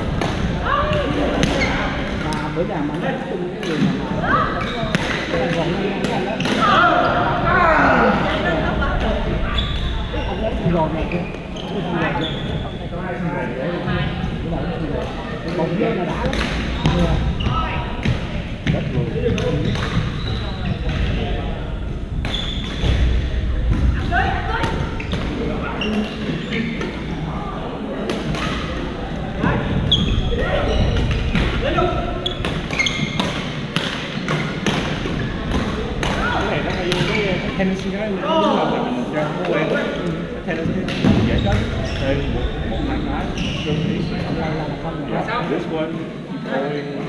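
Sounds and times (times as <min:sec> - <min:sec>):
players' voices in a gym: 0:00.0 - 0:47.0.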